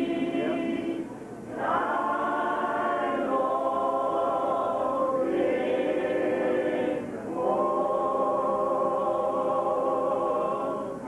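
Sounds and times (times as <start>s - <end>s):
choir singing a cappella: 0.0s - 11.0s.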